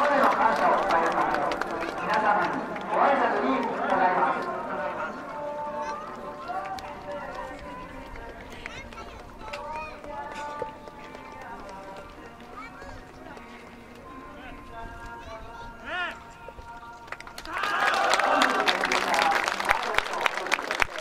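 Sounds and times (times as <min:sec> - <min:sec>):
background music: 0:00.0 - 0:21.0
crowd talking: 0:00.0 - 0:21.0.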